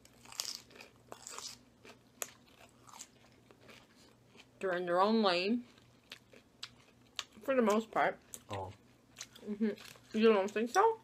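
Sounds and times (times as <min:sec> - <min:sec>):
salad crunching while chewed: 0:00.0 - 0:04.6.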